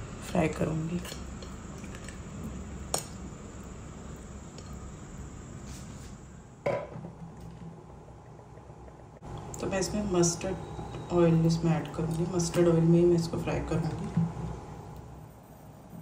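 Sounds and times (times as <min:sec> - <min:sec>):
low steady hum: 0:00.0 - 0:16.0.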